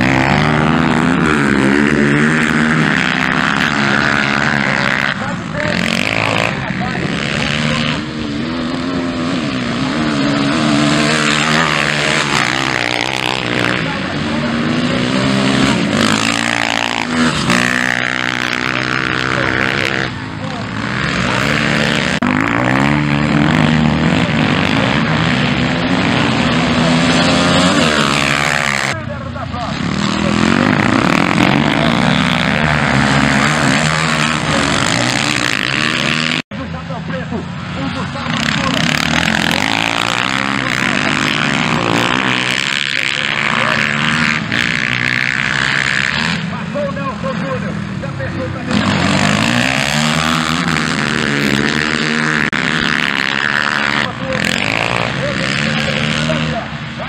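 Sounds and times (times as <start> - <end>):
dirt bike engines revving: 0.0 - 57.0.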